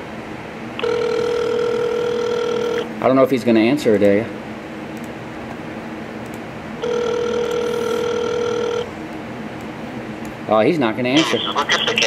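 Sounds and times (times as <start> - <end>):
telephone ringback tone: 0.8 - 2.8, 6.8 - 8.9.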